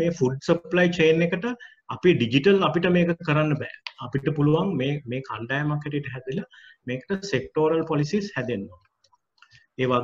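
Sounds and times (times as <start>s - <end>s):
man speaking: 0.0s - 9.0s, 9.8s - 10.0s.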